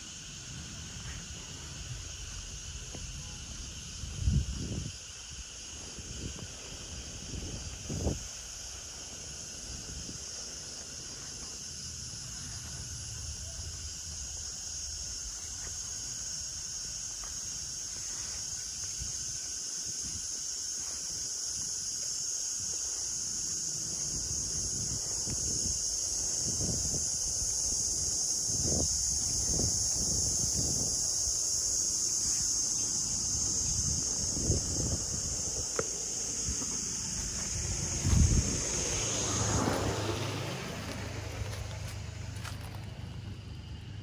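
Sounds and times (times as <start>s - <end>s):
cicadas droning: 0.0s - 44.0s
wind on microphone: 1.0s - 16.5s, 17.4s - 41.5s
footsteps on brick path: 33.2s - 38.4s, 40.8s - 43.2s.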